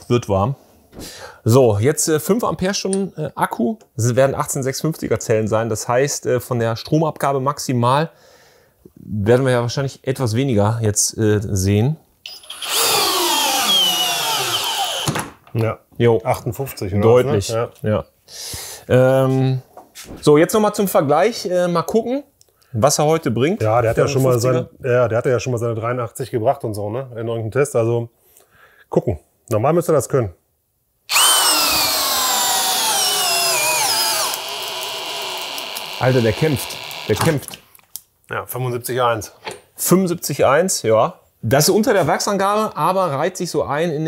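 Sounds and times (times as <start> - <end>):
cordless drill motor whine: 12.3 - 15.2, 31.1 - 37.4.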